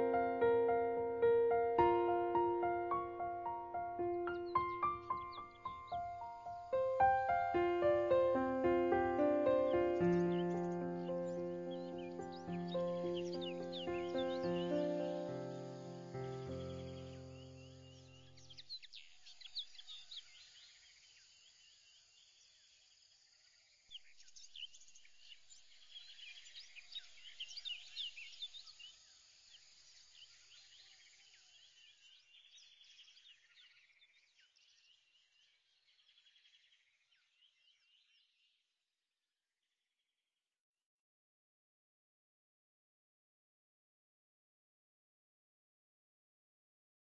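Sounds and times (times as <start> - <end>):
background music: 0.0 - 17.7
birds chirping and trilling: 0.0 - 20.9, 23.9 - 38.4.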